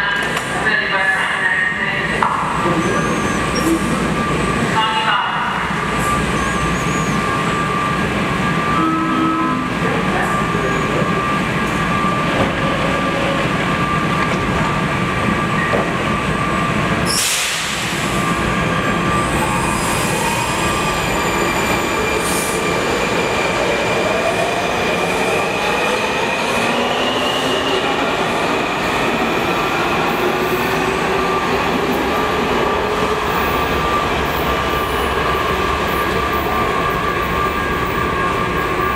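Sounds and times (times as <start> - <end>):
subway train motor whine: 5.6 - 38.9.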